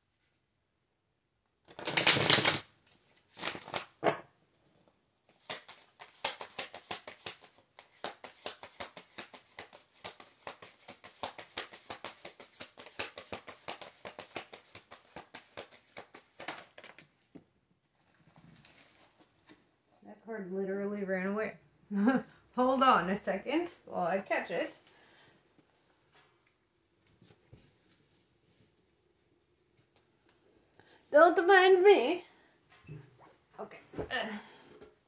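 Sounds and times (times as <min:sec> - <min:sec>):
cards being shuffled: 0:01.7 - 0:04.2, 0:05.3 - 0:17.4.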